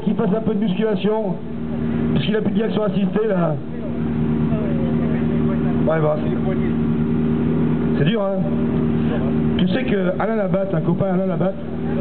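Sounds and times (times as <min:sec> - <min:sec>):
rally car engine idling: 0:00.0 - 0:12.0.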